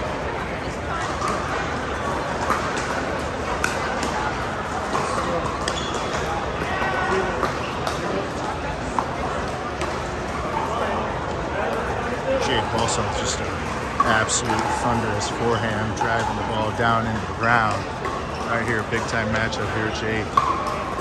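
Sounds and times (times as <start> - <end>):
background chatter: 0.0 - 21.0
paddles hitting plastic ball: 1.1 - 10.6.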